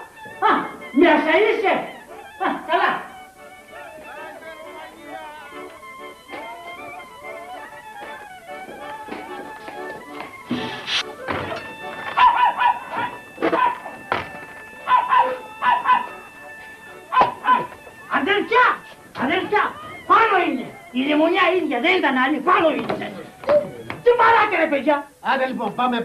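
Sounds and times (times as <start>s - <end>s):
soft background music: 0.0s - 26.0s
dog barking loudly: 12.0s - 14.0s, 14.8s - 16.2s, 17.1s - 20.8s.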